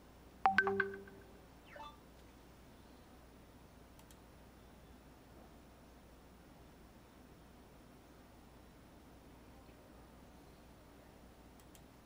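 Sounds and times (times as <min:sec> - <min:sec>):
electronic notification chime: 0:00.5 - 0:01.9
faint falling blip: 0:00.5 - 0:01.9.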